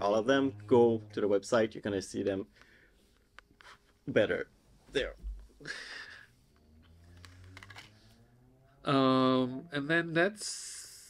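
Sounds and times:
faint low hum: 0:00.0 - 0:11.0
person laughing: 0:05.6 - 0:06.3.

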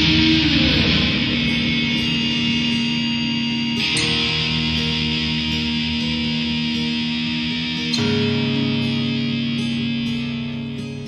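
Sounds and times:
electric guitars holding chords: 0:00.0 - 0:11.0
guitar note sliding down: 0:00.0 - 0:11.0.

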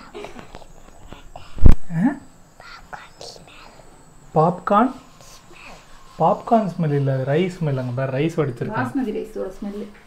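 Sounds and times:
child whispering: 0:00.0 - 0:01.7, 0:02.6 - 0:04.0, 0:05.2 - 0:06.2.

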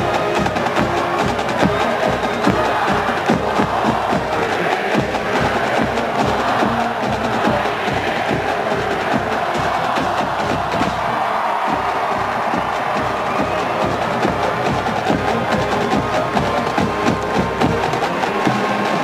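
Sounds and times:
marching band playing: 0:00.0 - 0:19.0
steady drum beat: 0:00.0 - 0:19.0.

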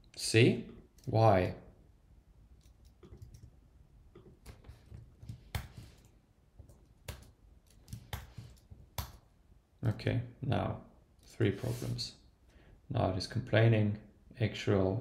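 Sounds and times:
computer keyboard clicks: 0:02.6 - 0:03.6.

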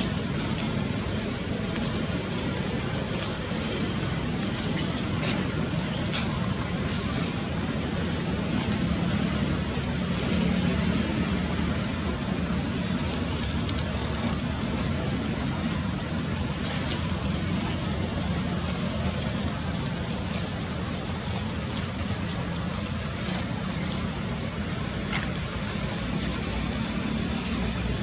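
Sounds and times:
outdoor background rumble and hiss: 0:00.0 - 0:28.0.

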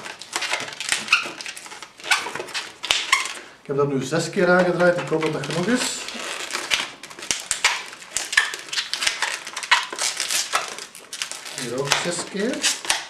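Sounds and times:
rubber balloons squeaking: 0:00.0 - 0:13.0.

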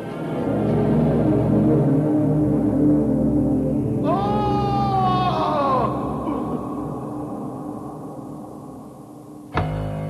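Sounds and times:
low background music: 0:00.0 - 0:10.0.

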